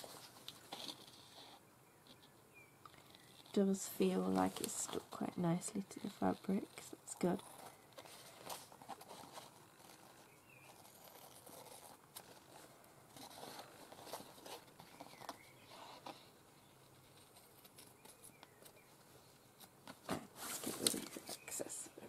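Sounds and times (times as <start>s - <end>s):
fabric and card rustling: 2.9s - 22.0s.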